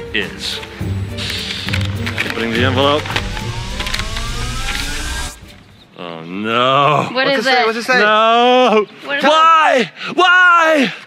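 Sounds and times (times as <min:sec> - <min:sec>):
rising suspense tone: 0:01.8 - 0:06.0
rushing noise: 0:02.1 - 0:06.0.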